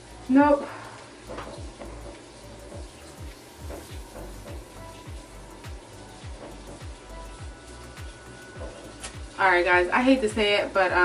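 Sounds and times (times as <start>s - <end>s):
music with deep bass beat: 0.0s - 11.0s
washing machine hum: 0.0s - 11.0s.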